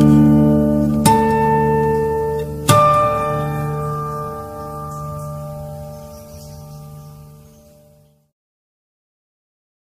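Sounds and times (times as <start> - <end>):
acoustic guitar chord ringing: 0.0 - 8.3.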